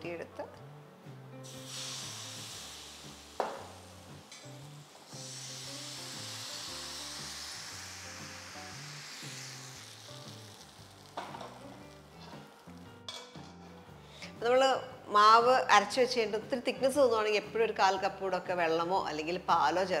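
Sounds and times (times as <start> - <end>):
batter sizzling in hot pan: 1.4 - 12.9
sharp knock: 3.4 - 3.7.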